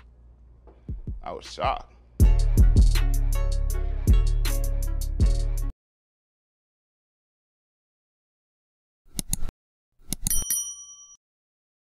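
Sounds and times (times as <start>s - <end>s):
mouse clicks: 9.1s - 9.5s
bright bell ding: 10.3s - 11.2s.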